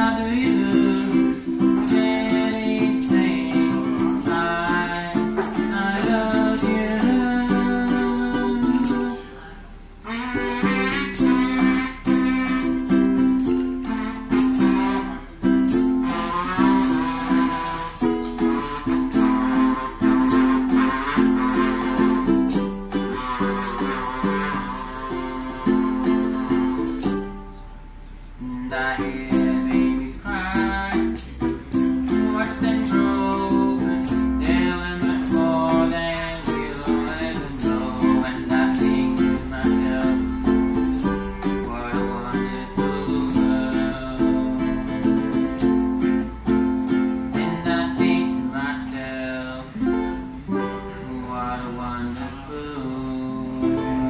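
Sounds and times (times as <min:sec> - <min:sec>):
wavering melody line: 0:00.0 - 0:27.8
ukulele strumming: 0:00.0 - 0:54.0.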